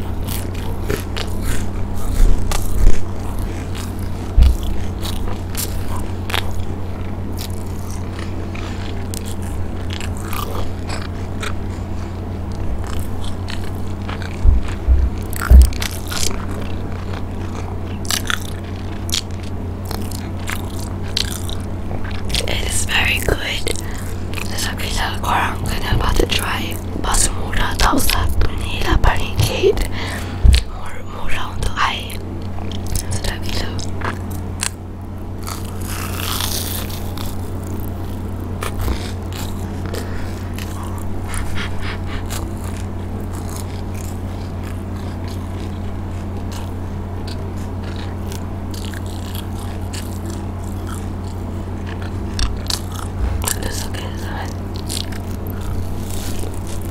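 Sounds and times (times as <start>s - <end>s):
crunchy bites and wet chewing: 0.0s - 56.9s
steady low hum: 0.0s - 56.9s
loud thumps: 14.4s - 15.9s, 53.1s - 53.6s.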